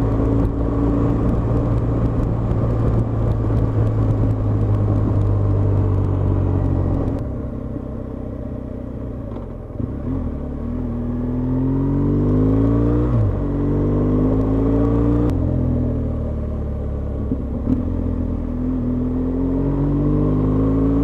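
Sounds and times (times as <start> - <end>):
wind rush: 0.0 - 7.4
motorcycle engine accelerating: 0.0 - 21.0.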